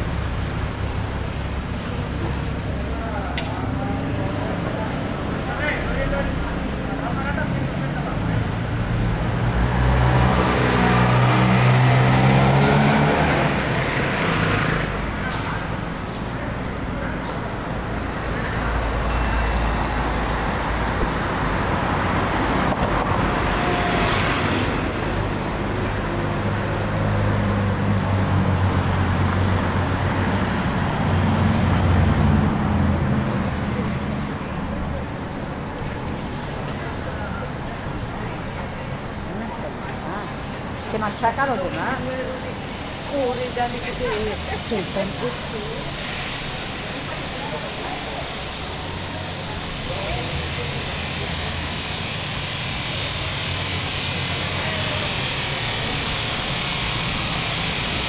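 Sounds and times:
cars driving past slowly: 0:00.0 - 0:58.0.

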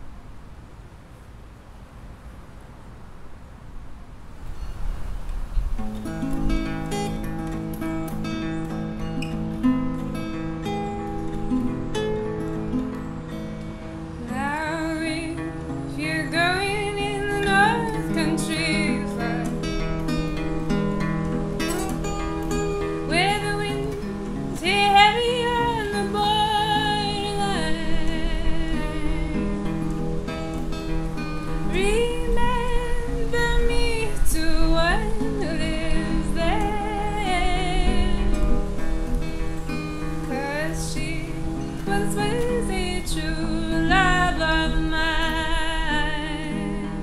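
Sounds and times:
plucked acoustic guitar: 0:05.6 - 0:47.0
woman singing: 0:14.2 - 0:19.7, 0:23.0 - 0:29.9, 0:31.7 - 0:38.8, 0:40.3 - 0:47.0.

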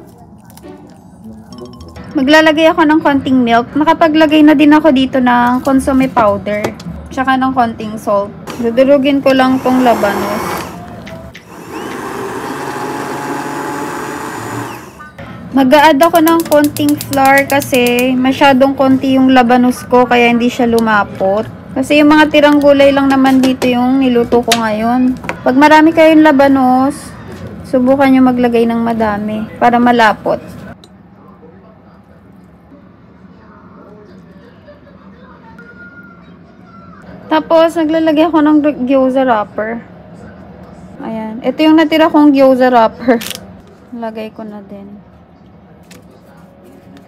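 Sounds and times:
immersion blender running: 0:08.5 - 0:15.1.

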